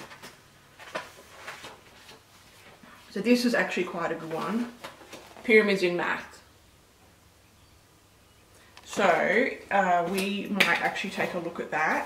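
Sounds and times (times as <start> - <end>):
book pages turning: 0.0 - 2.8.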